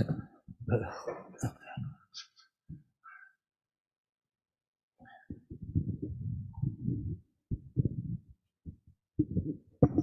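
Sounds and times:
microphone handling thumps: 0:05.3 - 0:10.0.

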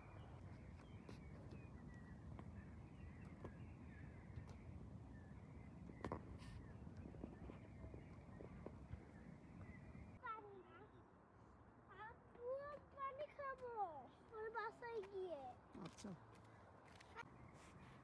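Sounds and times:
faint bird chirps: 0:00.0 - 0:11.1.

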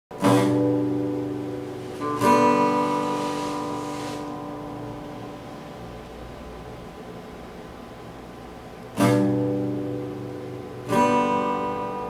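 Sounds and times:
acoustic guitar chords strummed: 0:00.1 - 0:07.1, 0:08.6 - 0:12.0.

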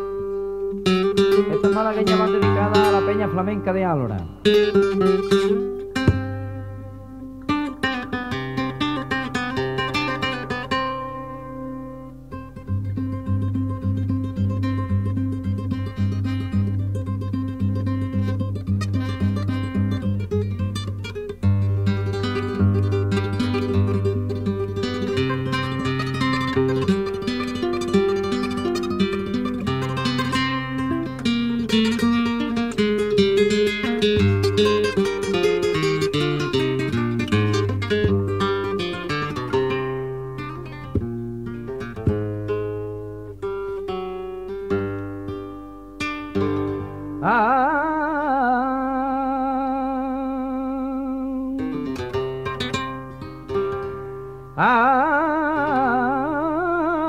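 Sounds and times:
solo flamenco guitar: 0:00.0 - 0:57.0.

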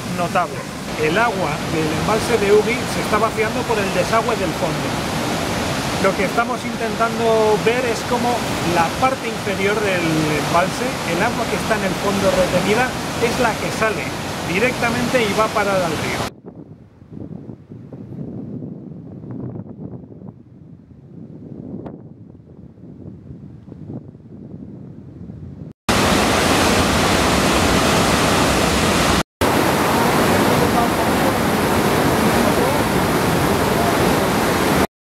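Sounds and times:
faint wind: 0:00.0 - 0:34.9
water blasting into basin: 0:25.9 - 0:34.9.

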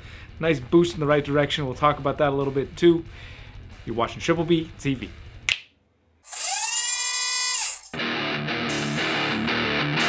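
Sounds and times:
hissing whine rising and falling: 0:06.3 - 0:07.9.

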